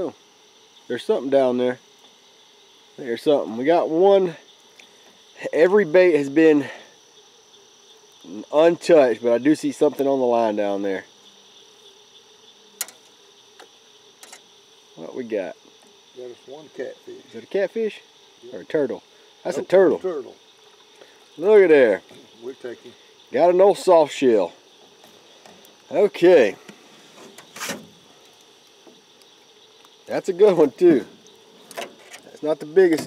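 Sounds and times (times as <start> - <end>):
crickets chirring: 0.0 - 33.0.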